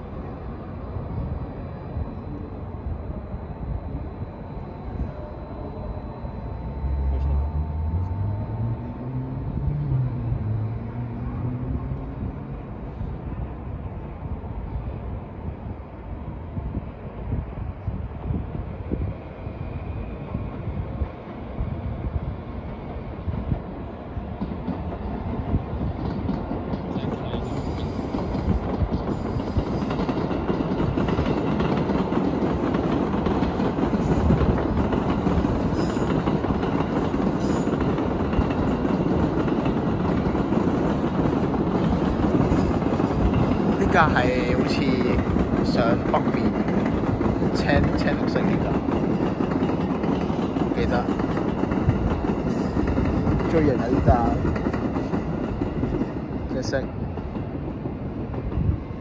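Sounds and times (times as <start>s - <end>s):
electric train running on tracks: 0.0s - 59.0s.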